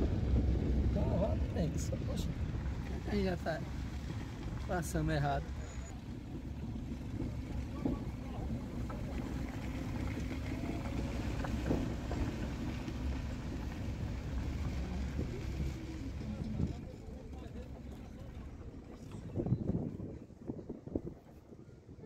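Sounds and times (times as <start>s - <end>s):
car rumbling on dirt track: 0.0s - 22.0s.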